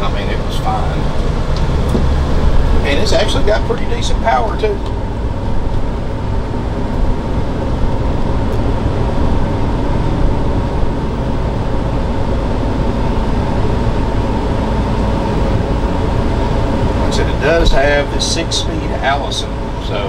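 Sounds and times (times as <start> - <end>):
engine low rumble: 0.0 - 20.0
tyre road noise: 0.0 - 20.0.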